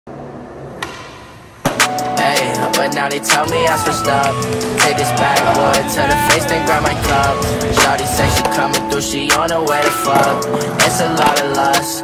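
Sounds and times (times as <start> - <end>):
music: 1.6 - 12.0
skateboard tail popping: 3.3 - 12.0.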